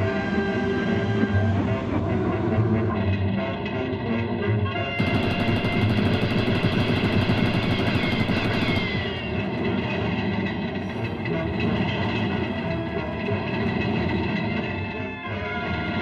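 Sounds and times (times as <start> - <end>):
submachine gun fire: 5.0 - 12.6
speeding train rumble and clatter: 5.0 - 15.2.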